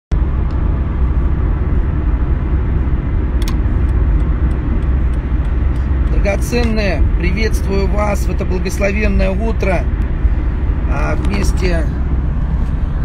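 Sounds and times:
car road and engine rumble: 0.1 - 13.0
light click: 3.4 - 3.6.

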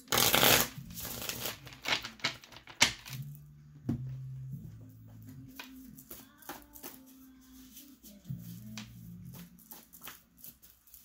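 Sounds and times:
cards shuffling: 0.0 - 3.4, 5.5 - 11.0.

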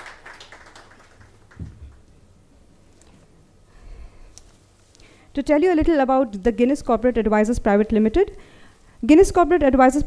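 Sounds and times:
hand claps: 0.0 - 2.1.

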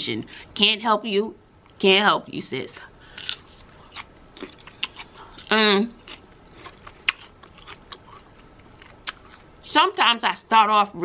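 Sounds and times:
chewing and crunching pepper: 3.1 - 9.7.

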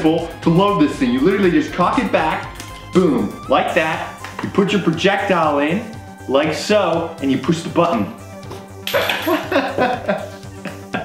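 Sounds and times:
man laughing: 9.0 - 11.0.

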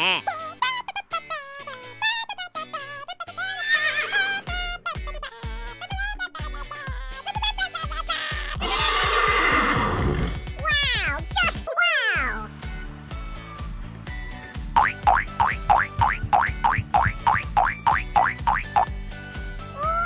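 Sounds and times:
children's background music: 0.0 - 20.0
horse whinny: 3.6 - 4.4, 8.6 - 10.4.

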